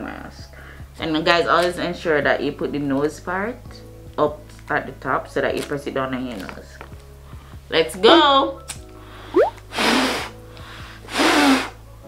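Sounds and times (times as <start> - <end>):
background music: 0.0 - 12.0
breath puffs through face mask: 9.0 - 11.9.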